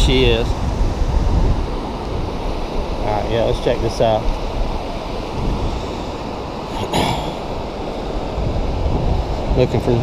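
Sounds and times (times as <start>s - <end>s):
ocean surf on beach: 0.0s - 10.0s
wind buffeting microphone: 0.0s - 10.0s.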